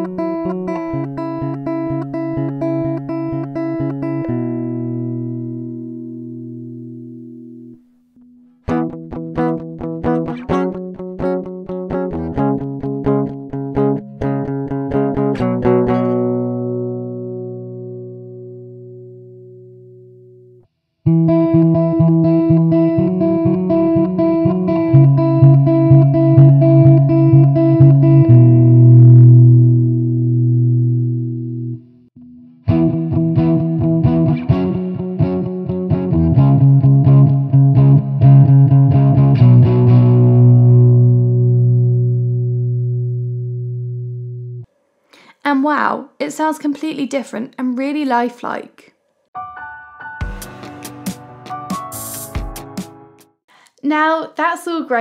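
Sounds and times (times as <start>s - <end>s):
clean electric guitar notes: 0.0s - 44.7s
lightly distorted electric guitar: 0.0s - 45.3s, 49.4s - 53.6s.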